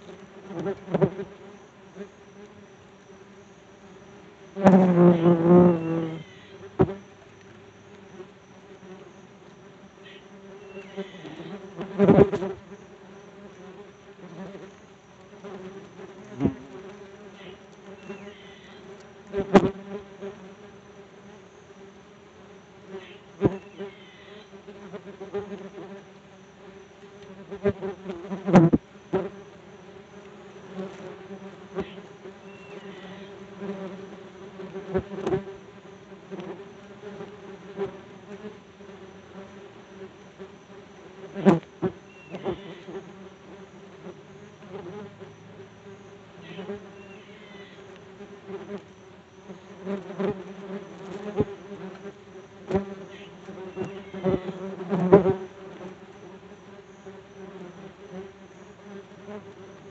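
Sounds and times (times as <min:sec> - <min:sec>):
wasps buzzing: 0:00.0 - 0:59.9.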